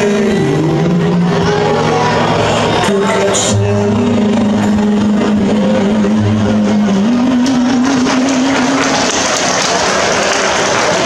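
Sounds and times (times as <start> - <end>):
crowd applause: 0.0 - 11.0.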